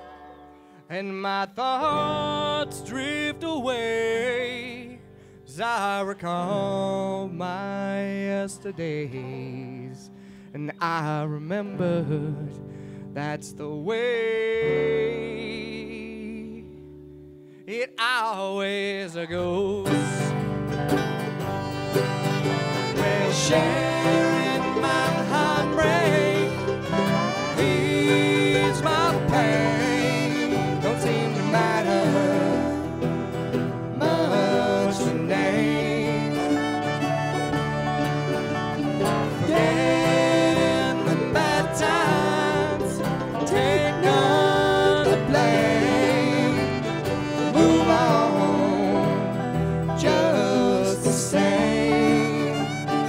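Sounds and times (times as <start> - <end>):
bluegrass string band playing: 0.0 - 0.9, 1.8 - 10.5, 14.6 - 16.4, 19.5 - 53.0.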